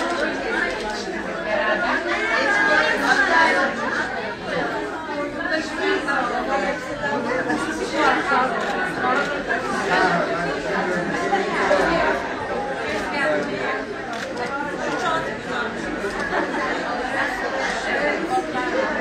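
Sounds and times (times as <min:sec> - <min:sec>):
crowd chatter: 0:00.0 - 0:19.0.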